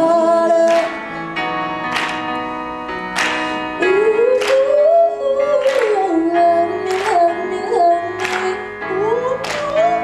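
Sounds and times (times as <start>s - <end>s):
electronic keyboard chords: 0.0s - 10.0s.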